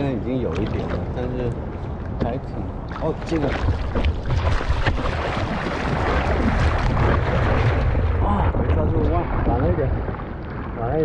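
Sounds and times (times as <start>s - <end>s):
wind rumble on microphone: 0.0s - 11.0s
water splashing around surfboard: 2.9s - 8.2s.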